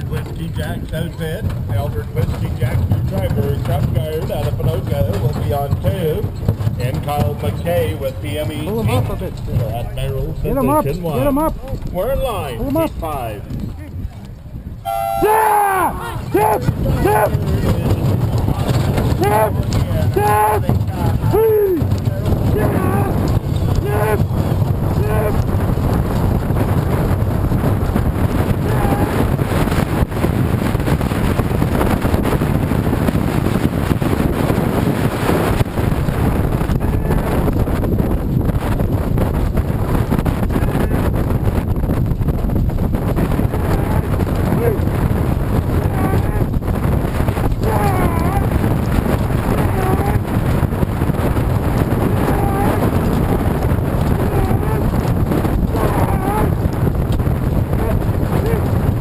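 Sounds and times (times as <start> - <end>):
galloping horses and wagon rumble: 0.0 - 59.0
wind rushing over microphone: 0.0 - 59.0
voice calls: 14.8 - 17.7, 19.1 - 21.9, 22.5 - 25.4, 28.6 - 29.2, 43.5 - 44.8, 45.8 - 46.5, 47.6 - 48.6, 49.5 - 50.3, 52.1 - 52.9, 54.2 - 54.9, 55.7 - 56.6.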